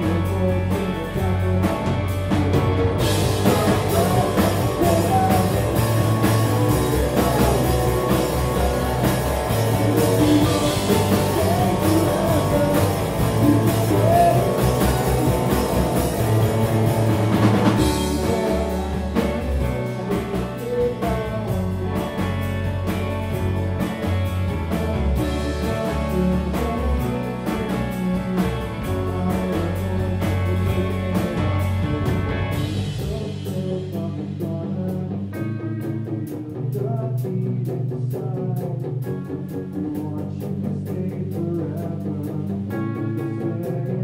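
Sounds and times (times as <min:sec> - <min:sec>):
person singing lead vocal: 0:00.0 - 0:22.6, 0:24.5 - 0:44.0
drum kit: 0:00.0 - 0:44.0
electric bass: 0:00.0 - 0:44.0
electric guitars: 0:00.0 - 0:44.0.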